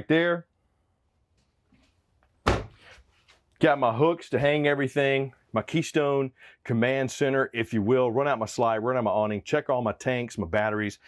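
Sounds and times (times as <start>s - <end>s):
cabinet door knocking shut: 2.4s - 2.8s.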